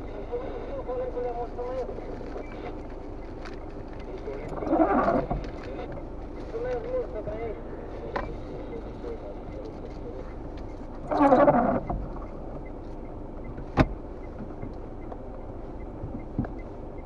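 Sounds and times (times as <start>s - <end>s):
car engine rumble: 0.0s - 17.0s
windshield wiper sweeping: 11.0s - 12.7s.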